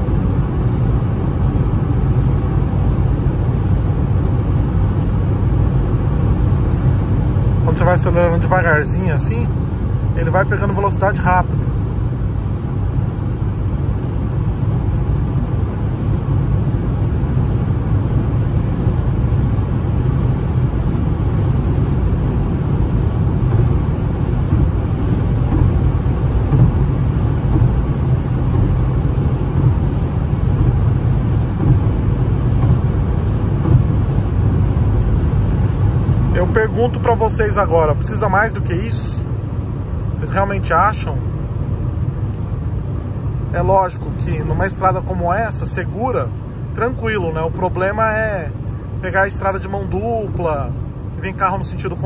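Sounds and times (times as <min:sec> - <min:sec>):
car engine drone: 0:00.0 - 0:52.0
tyre and road noise: 0:00.0 - 0:52.0.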